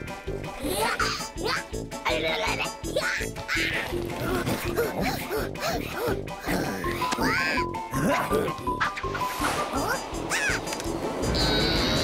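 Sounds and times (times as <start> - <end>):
playful cartoon music: 0.0 - 12.0.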